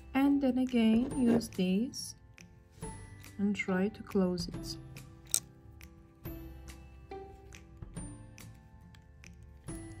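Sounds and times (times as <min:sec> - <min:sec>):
soft background music: 0:00.0 - 0:10.0
pliers closing metal ring click: 0:05.2 - 0:05.5.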